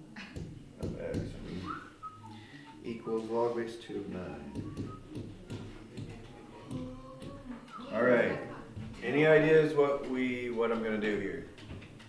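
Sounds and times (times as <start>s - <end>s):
low voices: 1.0s - 11.6s
person whistling short notes: 1.6s - 2.8s, 4.5s - 5.1s.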